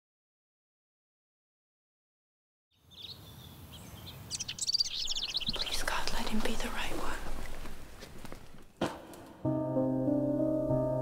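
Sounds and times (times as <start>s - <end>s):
bird chirping: 2.7s - 6.7s.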